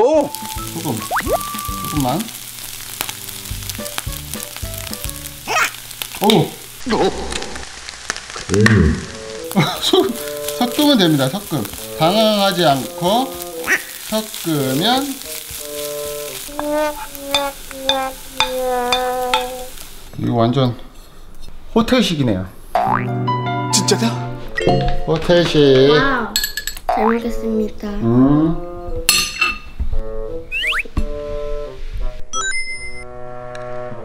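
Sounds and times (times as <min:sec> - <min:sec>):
background music notes: 0:00.0 - 0:05.5, 0:08.6 - 0:19.7, 0:22.8 - 0:26.1, 0:26.9 - 0:32.3, 0:33.0 - 0:34.0
eggs sizzling in a frying pan: 0:00.0 - 0:22.0, 0:22.7 - 0:23.1.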